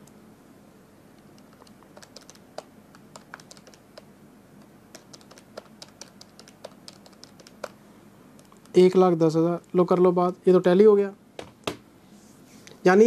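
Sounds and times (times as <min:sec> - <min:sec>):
calculator buttons clicking: 0:01.3 - 0:07.8.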